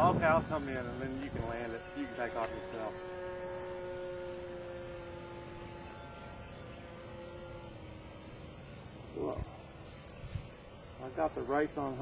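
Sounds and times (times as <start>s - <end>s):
model plane motor whine: 0.0s - 12.0s.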